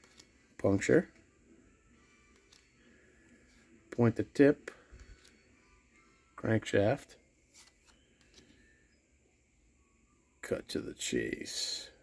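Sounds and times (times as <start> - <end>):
trading cards handled: 0.0 - 1.3, 2.0 - 5.9, 7.4 - 8.8.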